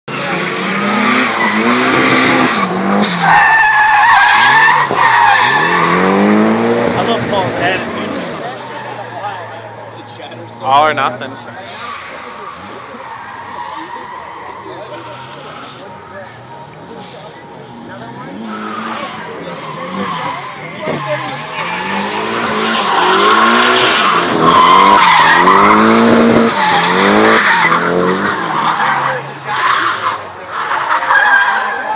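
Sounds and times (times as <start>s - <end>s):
car engine revving: 0.1s - 31.9s
tyres squealing on asphalt: 0.1s - 31.9s.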